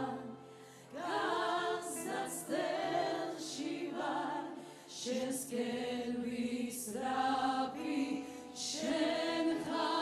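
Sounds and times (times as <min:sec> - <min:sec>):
choir singing worship song: 0:00.0 - 0:10.0.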